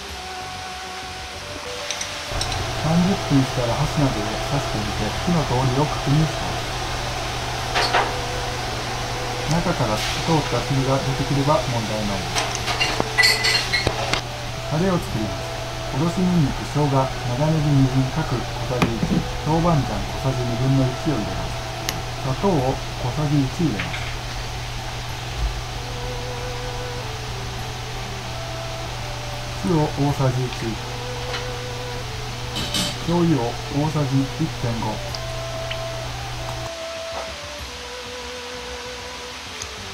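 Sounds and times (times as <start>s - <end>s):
faint steady tone: 1.7s - 39.7s
low hum: 2.2s - 37.2s
fan-like whoosh: 2.3s - 13.2s.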